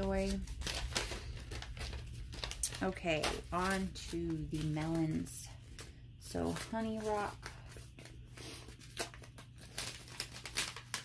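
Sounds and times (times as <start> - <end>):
paper seed packet rustling: 0.0 - 11.0.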